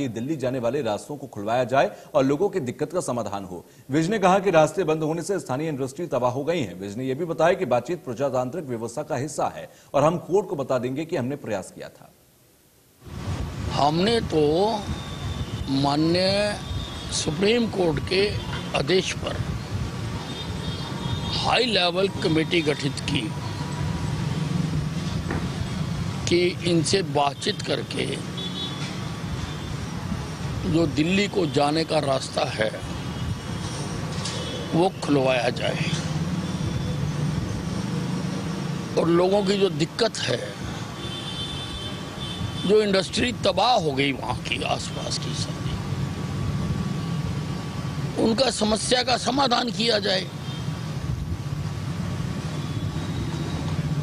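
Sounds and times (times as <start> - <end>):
low traffic rumble: 13.0 - 54.0.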